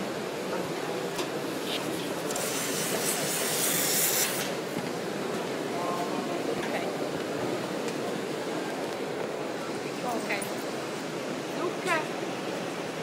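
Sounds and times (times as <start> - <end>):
burst of hiss: 2.3 - 4.6.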